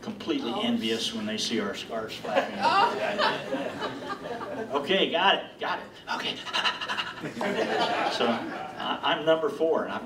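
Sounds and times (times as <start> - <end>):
man speaking: 0.0 - 3.5, 4.6 - 6.4, 7.8 - 10.0.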